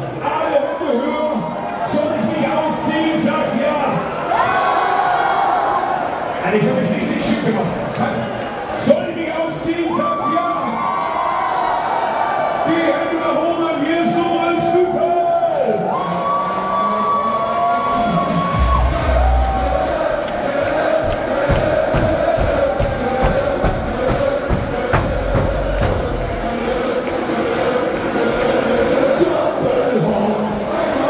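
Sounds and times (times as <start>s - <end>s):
crowd cheering: 0.0s - 31.0s
party music over loudspeakers: 15.6s - 31.0s
heavy bass drum beat: 18.5s - 26.9s.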